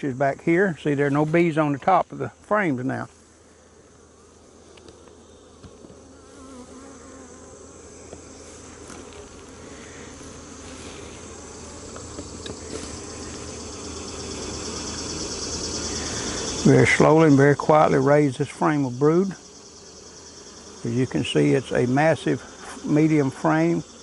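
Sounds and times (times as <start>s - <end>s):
honeybees buzzing: 0.0s - 24.0s
hive tool clicking on wooden frames: 4.7s - 6.0s, 11.9s - 13.4s.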